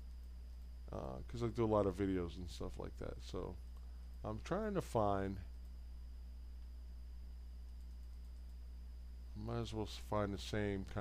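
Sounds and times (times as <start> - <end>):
faint high whine: 0.0 - 11.0
low electrical hum: 0.0 - 11.0.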